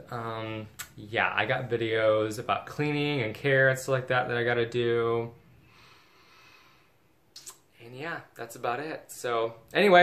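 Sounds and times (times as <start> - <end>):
man speaking: 0.0 - 5.4, 7.4 - 10.0
faint room hiss: 0.0 - 10.0.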